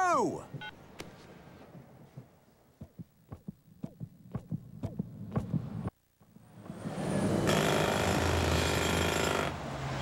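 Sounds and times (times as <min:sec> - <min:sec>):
fast pounding heartbeat: 0:01.8 - 0:05.9.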